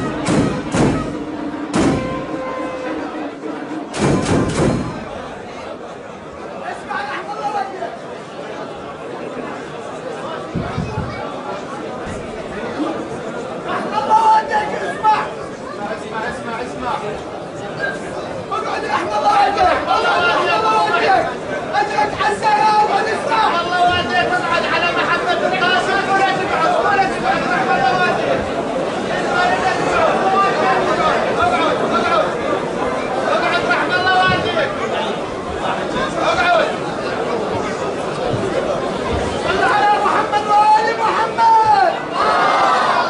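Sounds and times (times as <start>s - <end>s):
crowd of men talking: 0.0s - 43.0s.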